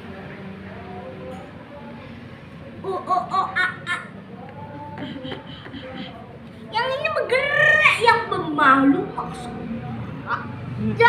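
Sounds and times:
child giggling: 2.8s - 4.2s, 5.0s - 6.2s.

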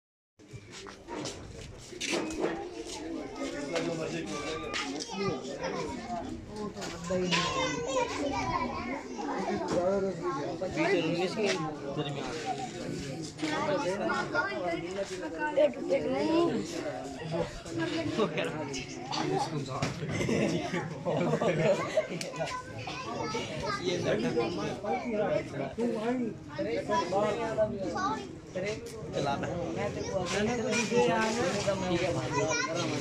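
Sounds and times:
children talking and calling out: 0.4s - 33.0s
overlapping voices chattering: 0.4s - 33.0s.

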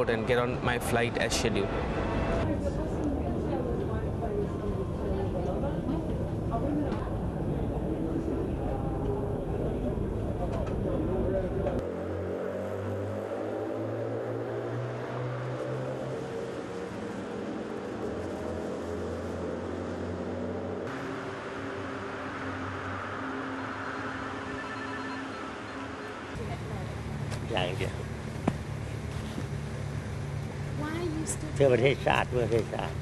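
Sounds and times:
low vehicle engine hum: 0.0s - 33.0s
crowd chatter: 2.4s - 11.8s.

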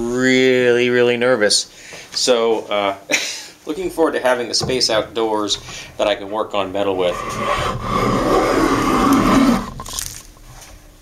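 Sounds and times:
hand plane shaving wood: 6.8s - 9.8s.

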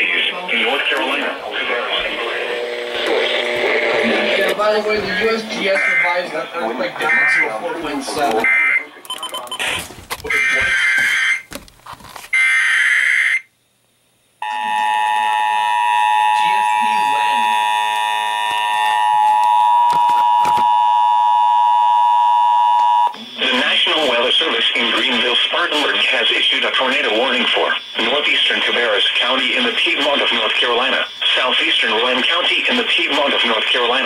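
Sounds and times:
person speaking warning message: 16.3s - 17.6s.

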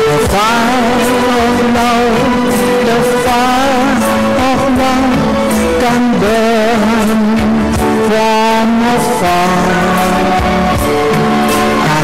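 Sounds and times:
band playing slow ballad: 0.0s - 12.0s.

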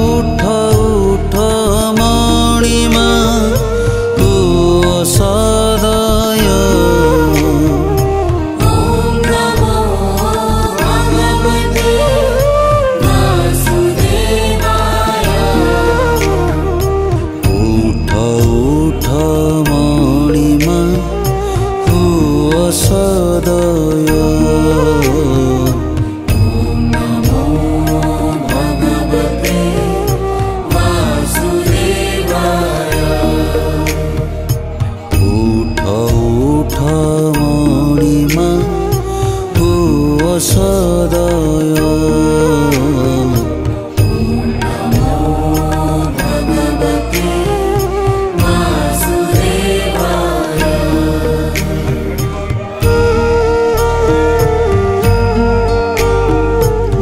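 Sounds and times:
chanted mantra singing: 0.0s - 57.0s
steady low drone: 0.0s - 57.0s.

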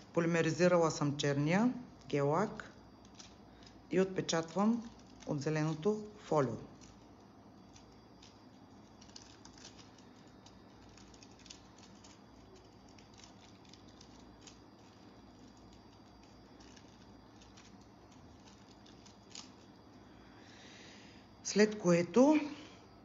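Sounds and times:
foil crinkling and ticking: 1.7s - 20.7s.

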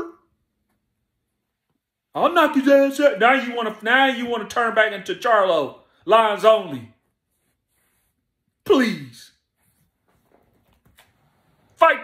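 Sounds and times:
person speaking: 2.1s - 7.7s, 8.5s - 9.6s, 11.7s - 12.0s.

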